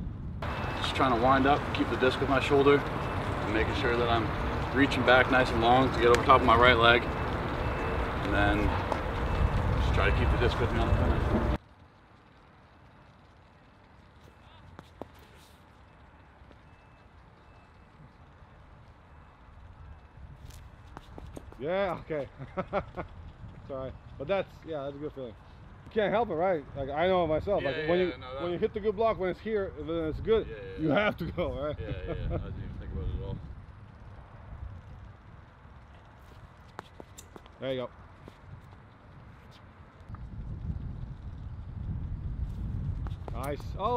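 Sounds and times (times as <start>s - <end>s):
wind rumble on microphone: 0.0s - 11.6s, 17.9s - 43.9s
shoes scuffing on concrete: 20.4s - 21.6s.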